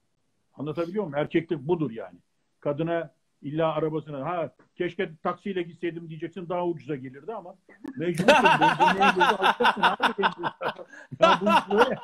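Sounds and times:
people laughing: 8.0s - 12.0s.

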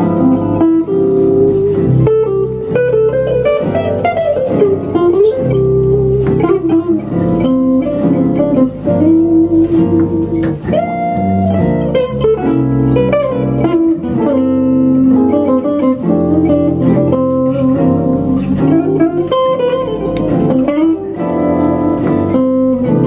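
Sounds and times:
lead guitar melody: 0.0s - 23.0s
plucked double bass: 0.0s - 23.0s
strummed rhythm guitar chords: 0.0s - 23.0s.

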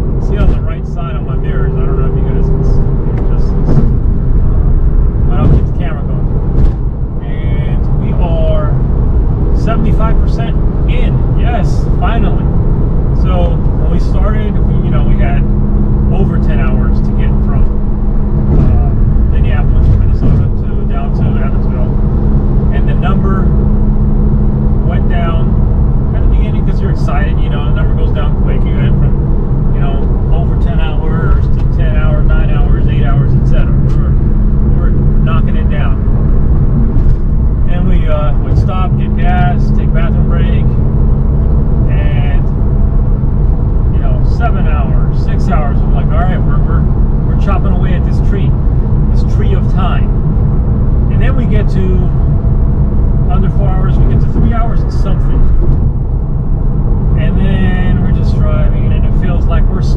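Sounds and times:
car engine and tyre drone: 0.0s - 59.9s.

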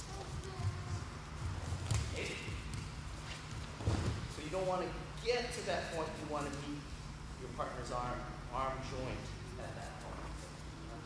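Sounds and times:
steady low hum: 0.0s - 11.0s
bare feet thumping on mats: 0.2s - 4.4s.

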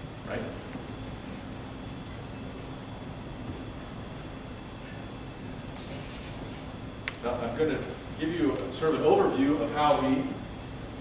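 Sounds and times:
faint constant hum: 0.0s - 11.0s.

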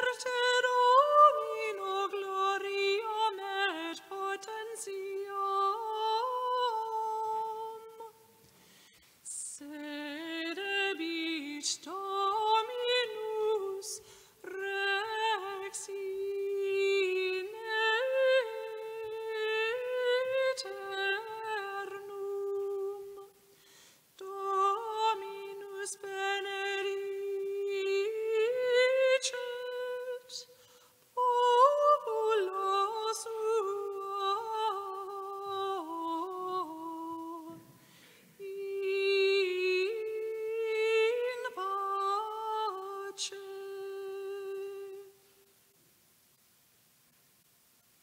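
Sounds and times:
person singing a hymn: 0.0s - 8.2s, 9.3s - 23.4s, 24.2s - 30.6s, 31.2s - 45.2s.

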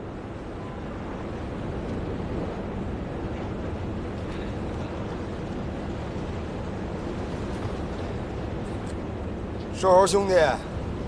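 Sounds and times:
sea and wind rushing: 0.0s - 11.0s.

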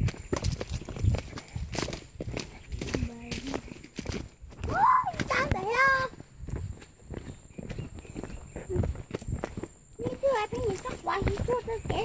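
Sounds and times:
footsteps on dirt path: 0.0s - 12.0s
person talking: 2.8s - 3.8s, 4.6s - 6.2s, 10.0s - 12.0s.

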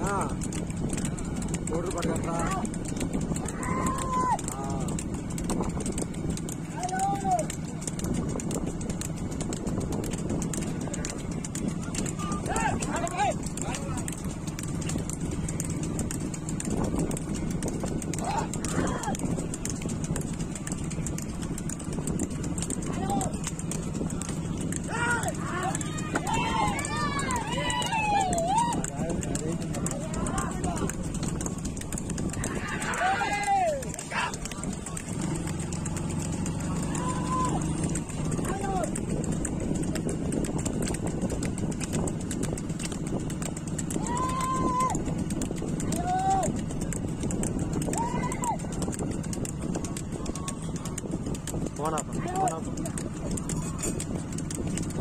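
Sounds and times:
hooves clattering on pavement: 0.0s - 55.0s
men shouting: 3.4s - 5.1s, 6.7s - 7.5s, 12.0s - 14.1s, 18.2s - 19.2s, 24.8s - 31.0s, 32.3s - 34.9s, 36.2s - 39.0s, 44.0s - 45.0s, 45.8s - 46.6s, 47.9s - 48.6s.

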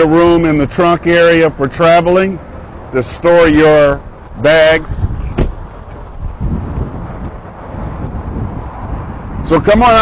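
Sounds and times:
wind rumble on microphone: 3.3s - 10.0s.

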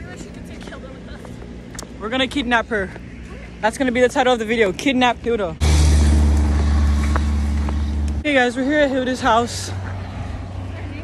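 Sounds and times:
bus engine rumbling: 5.4s - 11.0s.

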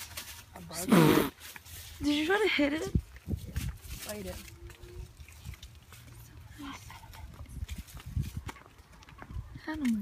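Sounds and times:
wind buffeting microphone: 2.7s - 5.7s, 6.7s - 10.0s.

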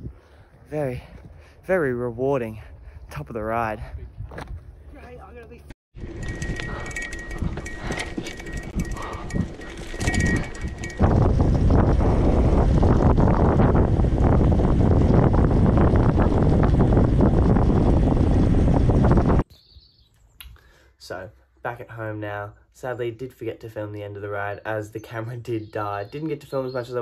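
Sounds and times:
bike rattling on dirt trail: 6.0s - 19.4s
wind rush: 6.0s - 19.4s.

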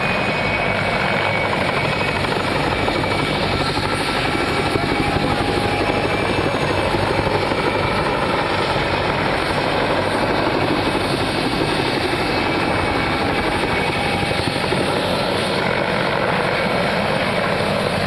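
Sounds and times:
helicopter rotors beating: 0.0s - 18.0s
high turbine engine whine: 0.0s - 18.0s.

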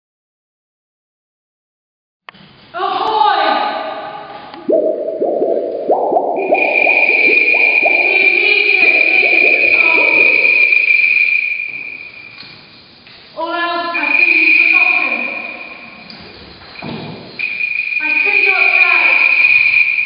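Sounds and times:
pitched tones rich in overtones: 4.5s - 12.0s
high held tone: 4.5s - 12.4s.

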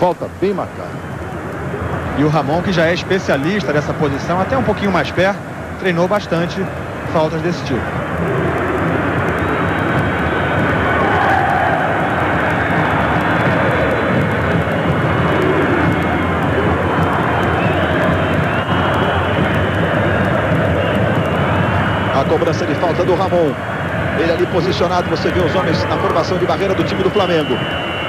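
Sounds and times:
stadium crowd noise: 0.0s - 28.0s.

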